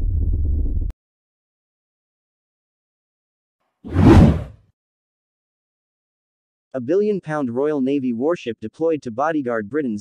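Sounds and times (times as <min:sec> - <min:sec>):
deep whoosh: 0:03.9 - 0:04.5.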